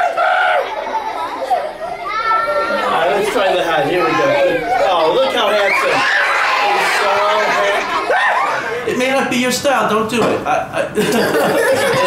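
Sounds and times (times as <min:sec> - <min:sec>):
children calling and chattering: 0:00.0 - 0:10.1.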